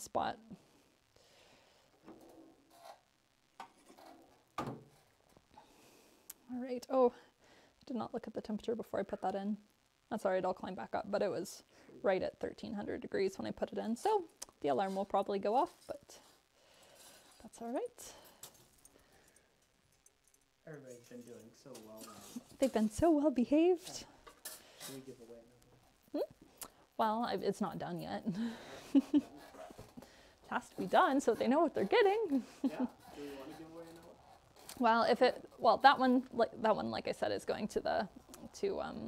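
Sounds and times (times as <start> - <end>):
faint scrapes and knocks: 1.9 - 5.7, 14.8 - 17.6, 18.2 - 23.0
kiln door shutting: 4.6 - 4.9.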